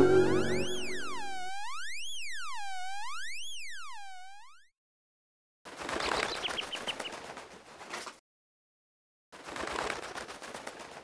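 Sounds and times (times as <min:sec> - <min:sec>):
background music: 0:00.0 - 0:01.3
warbling electronic tone: 0:00.0 - 0:04.7.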